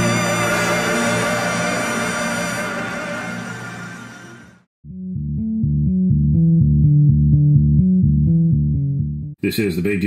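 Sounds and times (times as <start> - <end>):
music: 0.0 - 9.4
plucked bass guitar jingle: 4.9 - 9.3.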